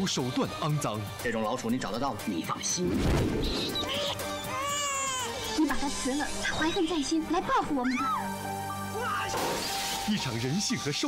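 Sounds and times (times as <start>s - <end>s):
background music: 0.0s - 11.0s
glass shattering: 9.3s - 10.2s.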